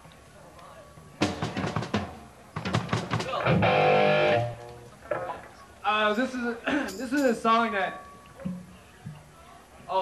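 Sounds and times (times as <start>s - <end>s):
drum hits: 1.2s - 4.6s.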